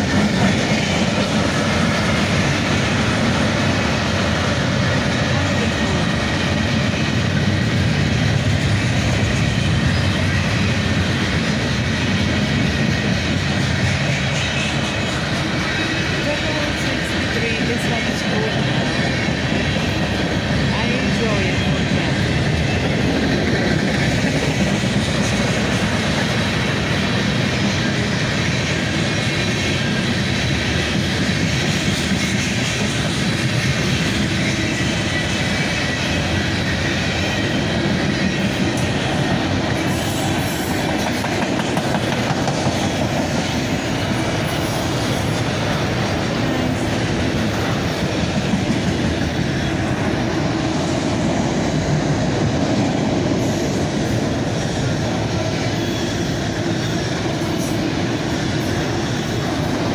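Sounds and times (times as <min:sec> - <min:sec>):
freight train cars rolling: 0:00.0 - 0:59.9.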